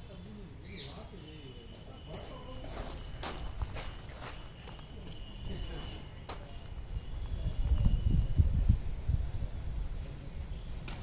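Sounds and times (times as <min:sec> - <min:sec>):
footsteps on gravelly asphalt: 0:02.1 - 0:07.4.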